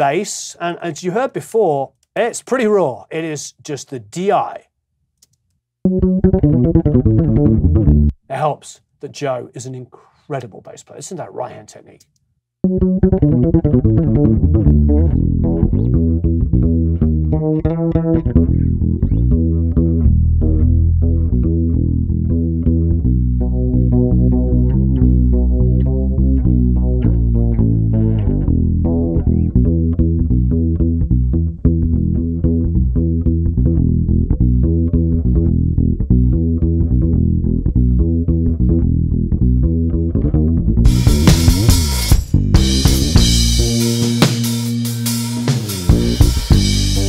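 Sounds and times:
electric bass guitar playing: 0:05.8 - 0:08.2, 0:12.6 - 0:47.0
drum kit with cymbals: 0:40.9 - 0:47.0.

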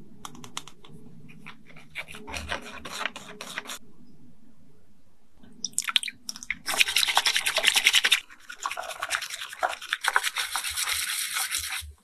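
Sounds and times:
whisk scratching glass bowl: 0:01.3 - 0:03.8, 0:06.7 - 0:12.0.

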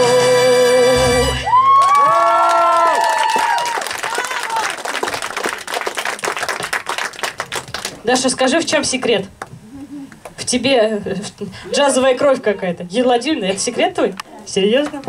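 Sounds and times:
musical accompaniment: 0:00.0 - 0:01.6
applause: 0:01.7 - 0:08.0.

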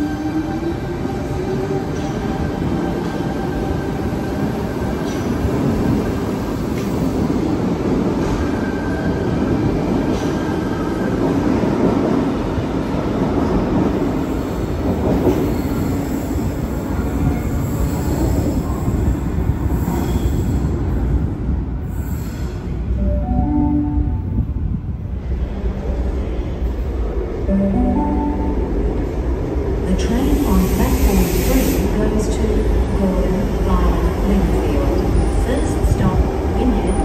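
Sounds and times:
train rumbling past on rails: 0:00.0 - 0:37.0.

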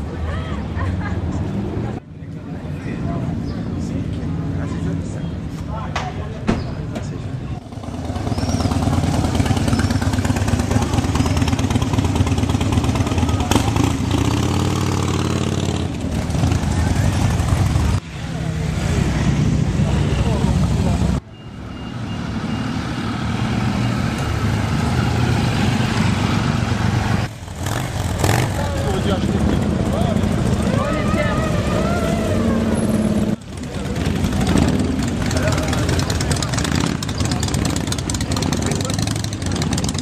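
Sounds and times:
crowd voices: 0:00.0 - 0:21.2, 0:28.0 - 0:40.0
motorcycle engines rumbling: 0:00.0 - 0:40.0.

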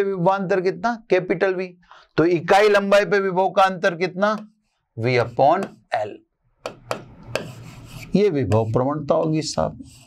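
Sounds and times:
chalk tapping on board: 0:05.5 - 0:05.8, 0:06.6 - 0:10.0
chalk scratching on board: 0:06.9 - 0:08.9, 0:09.5 - 0:10.0.

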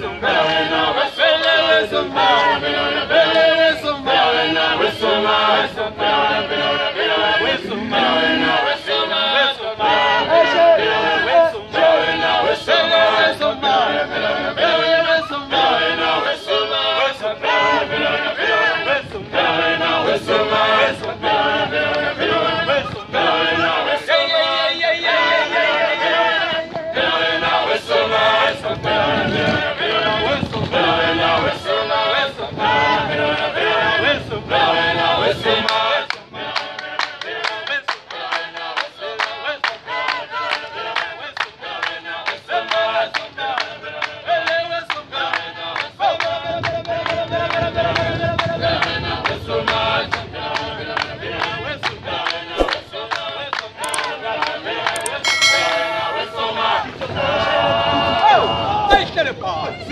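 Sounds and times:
group chanting without instruments: 0:00.0 - 0:46.2.

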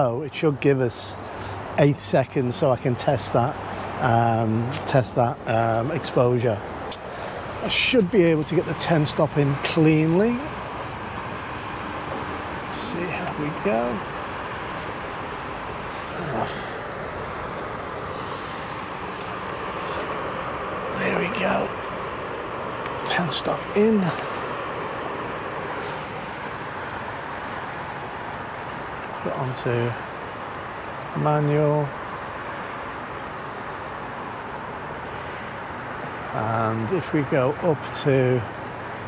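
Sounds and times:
ambient rumble and hiss: 0:00.0 - 0:39.0
road traffic on bridge: 0:00.0 - 0:39.0.

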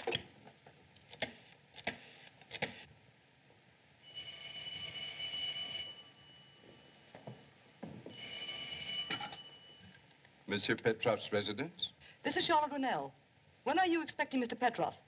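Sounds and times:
telephone bell ringing: 0:04.0 - 0:07.0, 0:08.1 - 0:10.0.

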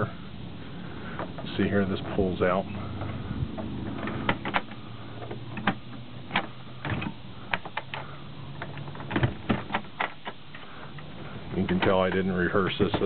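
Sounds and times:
steady low hum: 0:00.0 - 0:13.0
wooden shelf clicking and knocking: 0:03.0 - 0:10.6, 0:11.5 - 0:13.0.

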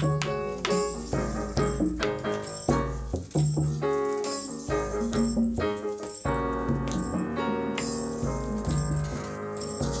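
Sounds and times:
maracas shaking: 0:00.0 - 0:10.0.

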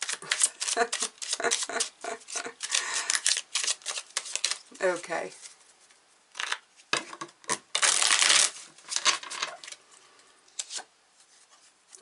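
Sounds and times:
cards being shuffled: 0:00.0 - 0:05.6, 0:06.4 - 0:09.8, 0:10.6 - 0:10.9.

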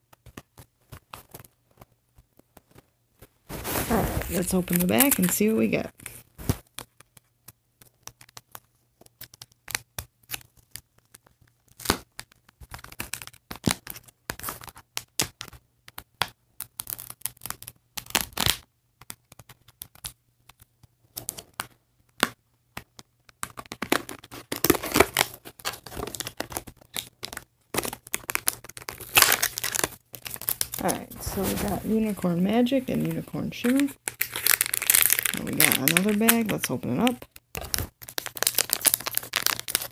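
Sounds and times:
packaging tearing and crinkling: 0:03.5 - 0:06.9, 0:07.8 - 0:15.6, 0:16.6 - 0:18.6, 0:23.4 - 0:39.9.

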